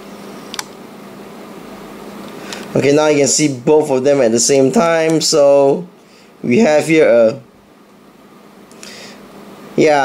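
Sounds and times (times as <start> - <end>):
low hum and hiss: 0.0 - 10.0
sharp click: 0.5 - 0.8.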